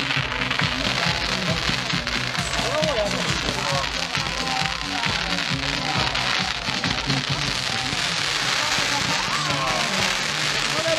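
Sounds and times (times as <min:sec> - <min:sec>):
music playing: 0:00.0 - 0:10.9
spark fountains hissing and crackling: 0:00.0 - 0:10.9.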